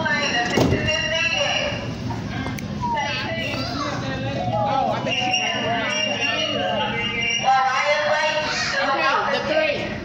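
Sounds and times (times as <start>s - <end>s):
outdoor noise: 0.0s - 10.0s
people talking and calling out: 0.0s - 10.0s.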